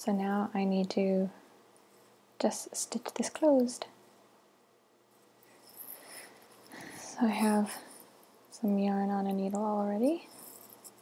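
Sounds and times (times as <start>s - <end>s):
soft rustling of yarn cushion: 5.1s - 11.0s.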